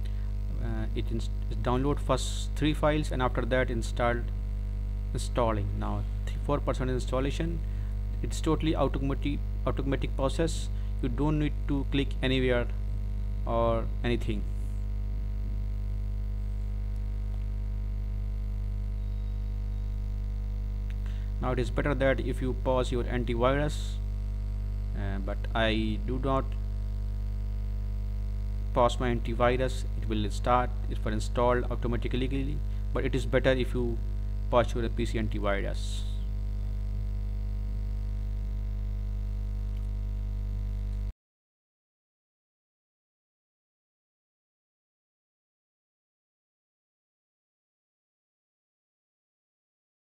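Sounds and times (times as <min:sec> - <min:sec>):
electrical mains hum: 0:00.0 - 0:41.1.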